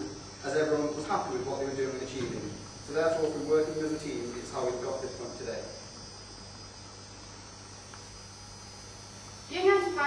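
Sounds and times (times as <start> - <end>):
electrical mains hum: 0.0 - 10.0
faint hiss: 0.0 - 10.0.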